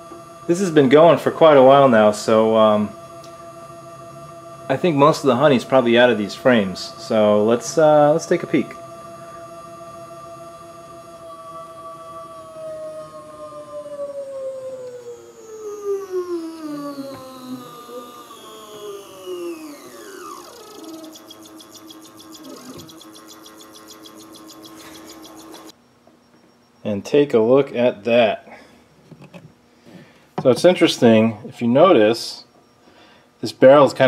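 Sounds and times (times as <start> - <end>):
stepper motor whining: 0.0 - 25.8.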